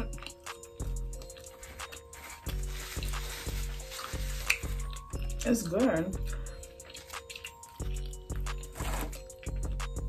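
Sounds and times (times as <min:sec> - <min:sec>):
crackly chewing: 0:00.0 - 0:05.1, 0:06.2 - 0:10.0
background music with steady beat: 0:00.0 - 0:10.0.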